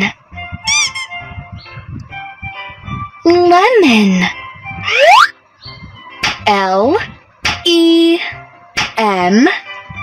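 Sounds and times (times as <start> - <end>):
soft children's music: 0.0 - 10.0
high squeaky sound effect: 0.7 - 1.2, 4.8 - 5.3.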